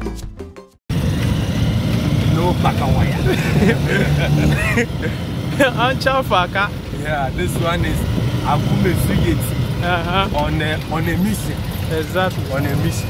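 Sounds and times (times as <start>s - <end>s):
music: 0.0s - 0.8s
motor tricycle engine and road noise: 0.9s - 13.0s
voices: 2.0s - 13.0s.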